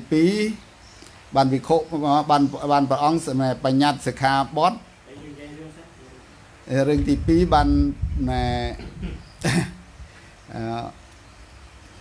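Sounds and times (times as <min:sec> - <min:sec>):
man clearing his throat: 0:08.8 - 0:09.8.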